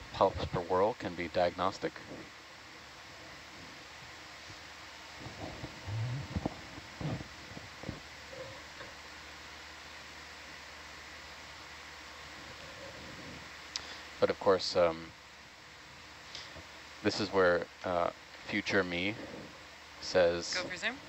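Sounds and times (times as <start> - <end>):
microphone hiss: 0.0 - 21.0
low thumps and rumbles: 3.1 - 8.9.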